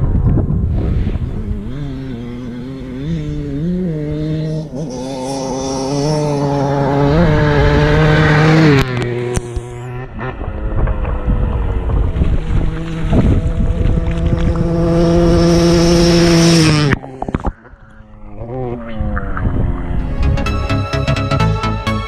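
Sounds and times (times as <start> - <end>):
dirt bike engine revving: 0.5 - 21.8.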